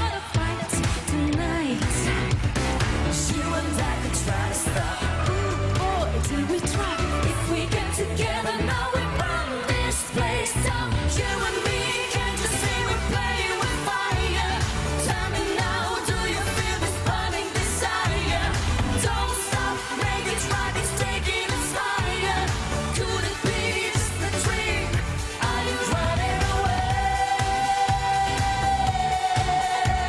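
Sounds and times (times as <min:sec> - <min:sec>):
live pop song with dance beat: 0:00.0 - 0:30.0.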